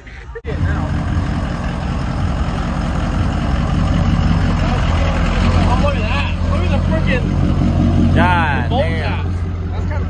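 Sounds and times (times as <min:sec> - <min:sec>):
pickup engine idling: 0:00.4 - 0:10.0.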